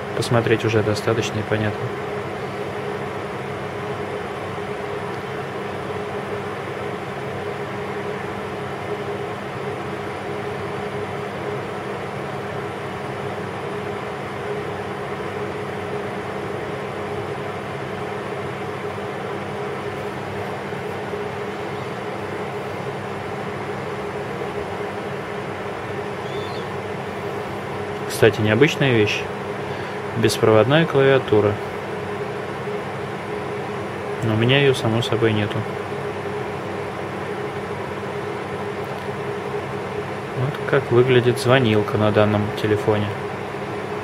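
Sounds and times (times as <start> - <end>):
steady machine hum: 0.0 - 44.0.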